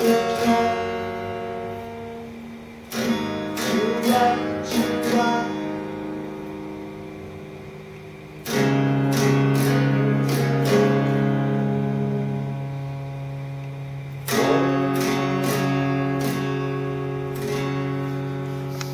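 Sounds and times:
fingerstyle acoustic guitar: 0.0s - 18.9s.

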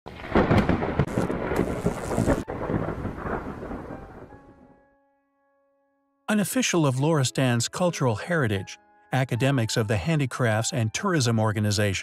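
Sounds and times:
thunder rumbling: 0.1s - 4.8s
heavy rain hiss: 0.4s - 3.8s.

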